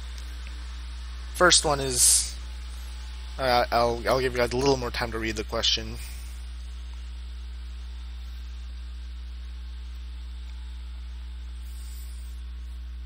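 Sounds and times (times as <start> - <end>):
electrical mains hum: 0.0 - 13.0
faint hiss: 0.0 - 13.0.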